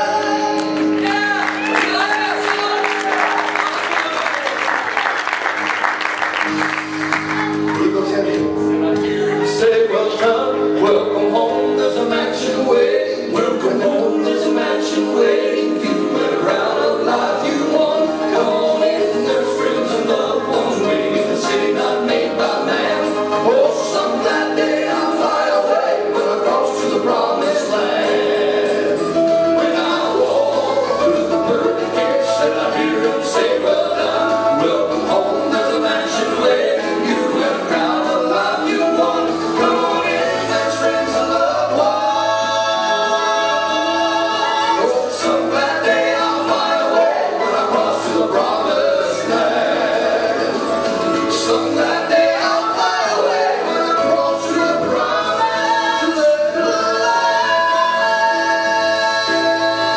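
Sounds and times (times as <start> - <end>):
male trio singing in harmony: 0.0 - 4.2, 9.0 - 59.9
piano: 0.0 - 59.9
scattered applause: 0.5 - 8.2.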